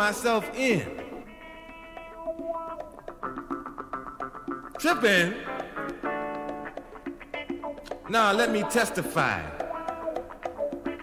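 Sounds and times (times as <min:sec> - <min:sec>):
person speaking: 0:00.0 - 0:01.3, 0:04.8 - 0:05.8, 0:07.9 - 0:10.0
plucked guitar notes: 0:00.0 - 0:11.0.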